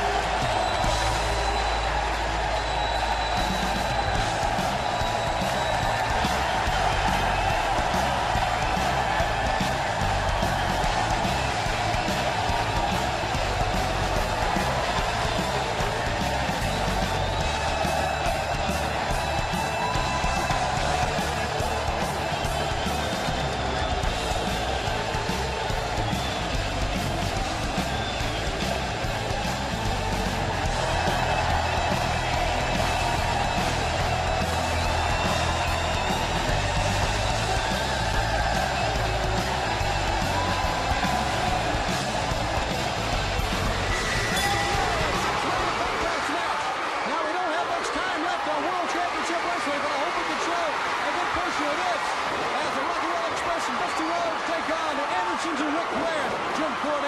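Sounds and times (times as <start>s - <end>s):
guitar-led rock music: 0.0s - 46.0s
arena crowd noise: 0.0s - 57.0s.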